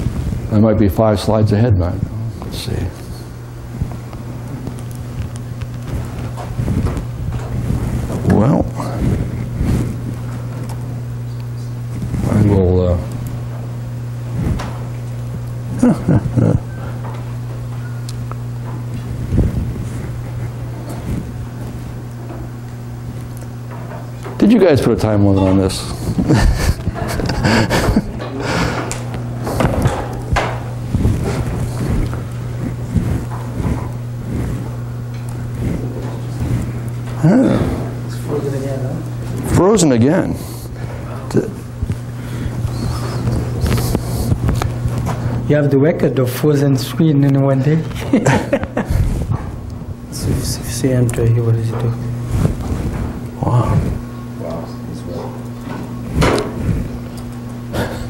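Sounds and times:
low electrical hum: 0.0 - 58.0
room noise: 0.0 - 58.0.

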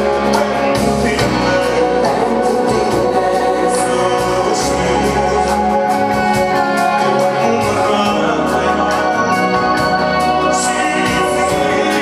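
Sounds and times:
bass guitar: 0.0 - 12.0
drums: 0.0 - 12.0
voices singing: 0.0 - 12.0.

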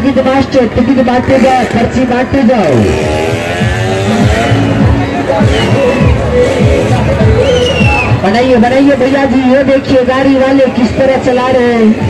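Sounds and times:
engine running: 1.4 - 8.2
fairground music with bass beat: 2.6 - 9.3.

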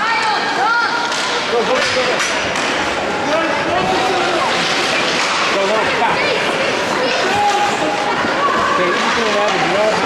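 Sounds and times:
hockey sticks clacking on ice: 1.0 - 2.9, 4.0 - 5.7
voices shouting: 5.6 - 10.0.

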